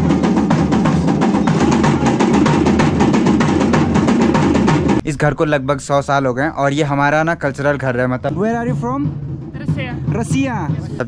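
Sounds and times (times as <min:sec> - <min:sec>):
rapid even drumming: 0:00.0 - 0:05.2, 0:06.8 - 0:11.0.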